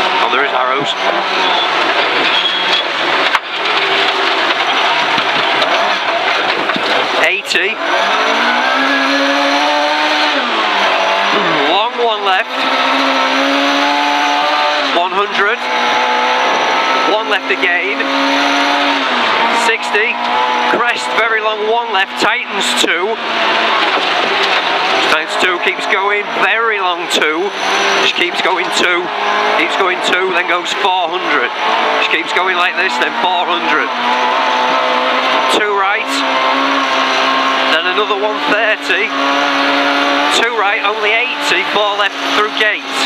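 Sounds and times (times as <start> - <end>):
gravel and tyre rush: 0.0 - 43.0
rally car engine at speed: 0.0 - 43.0
tyres on gravel: 0.2 - 8.8.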